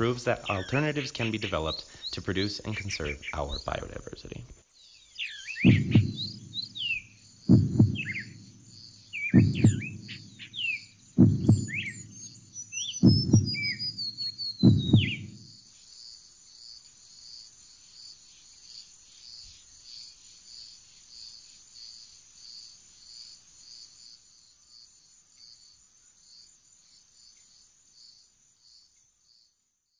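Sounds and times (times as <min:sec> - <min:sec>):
birds chirping: 0:00.0 - 0:15.6
insect pulsing trill: 0:05.2 - 0:29.4
deep thumps: 0:05.6 - 0:06.7, 0:07.4 - 0:08.6, 0:09.3 - 0:10.4, 0:11.2 - 0:15.5.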